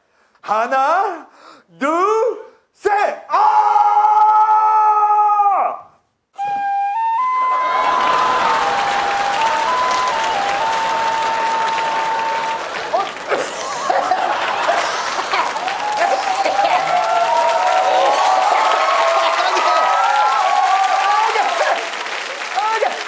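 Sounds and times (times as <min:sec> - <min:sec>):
audience applause and cheering: 0:06.5 - 0:23.0.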